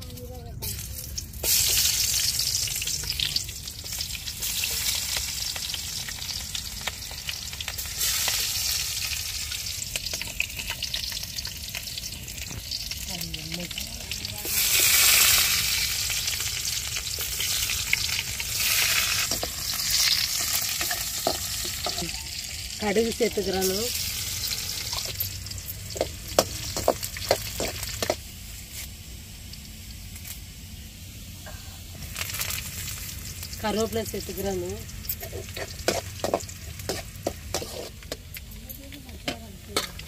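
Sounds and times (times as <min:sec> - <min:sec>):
oil sizzling in a wok: 0:00.0 - 0:40.0.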